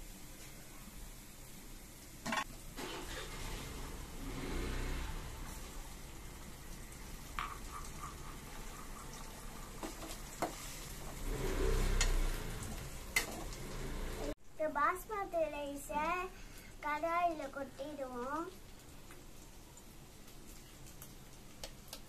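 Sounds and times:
egg and vegetables frying: 0:00.0 - 0:22.0
spatula stirring in a pan: 0:07.1 - 0:14.2.

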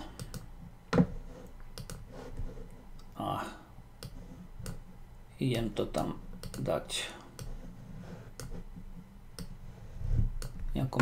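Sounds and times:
computer mouse clicks: 0:00.2 - 0:00.5, 0:01.7 - 0:02.0, 0:04.0 - 0:04.8, 0:06.4 - 0:06.7, 0:08.4 - 0:08.6.

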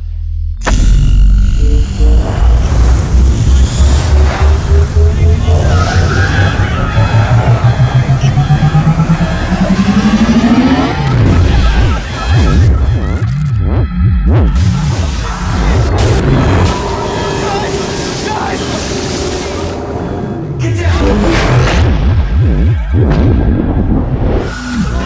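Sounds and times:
film score music: 0:00.0 - 0:25.0
rising tone: 0:00.6 - 0:11.4, 0:15.5 - 0:20.6
heavy throbbing pulse: 0:00.6 - 0:25.0.

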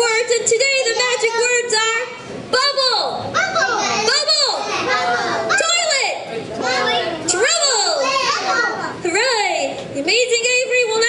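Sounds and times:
young children calling out: 0:03.0 - 0:06.0, 0:06.6 - 0:09.0.

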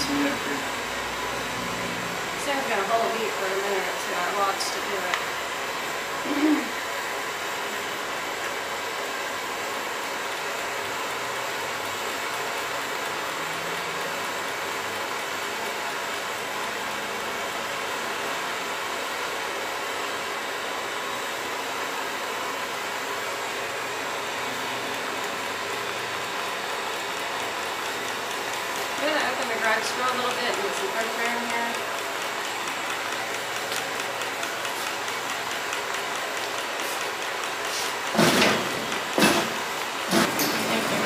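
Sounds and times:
blowtorch flame hissing: 0:00.0 - 0:13.4, 0:14.0 - 0:41.0.

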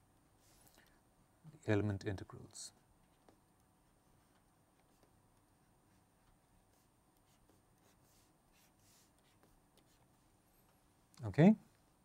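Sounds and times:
stylus scratching on a tablet: 0:05.9 - 0:10.2.

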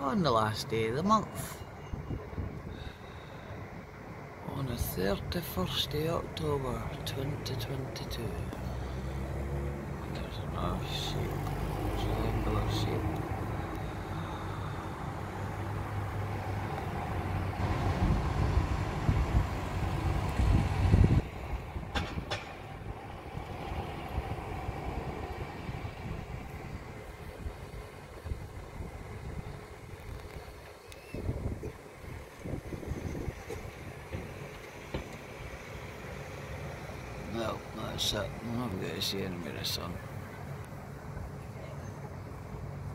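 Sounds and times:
faint steady background noise: 0:00.0 - 0:42.9.

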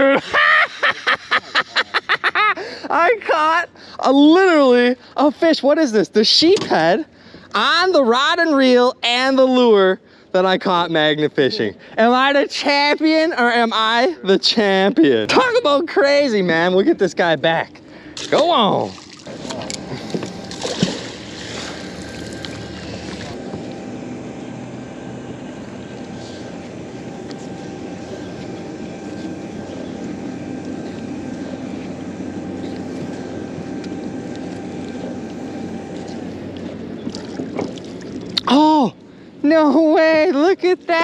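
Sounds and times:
low hum with held tones: 0:00.0 - 0:41.0
water sounds: 0:18.1 - 0:24.0, 0:34.3 - 0:39.1
fish splashing into water: 0:18.9 - 0:23.4.

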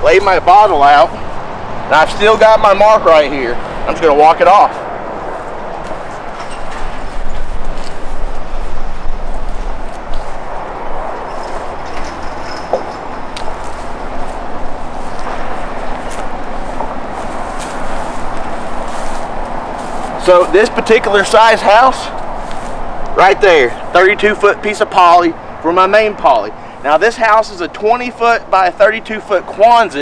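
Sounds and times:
steady rushing noise: 0:00.0 - 0:30.0
light ticks and rustles: 0:04.7 - 0:24.8.

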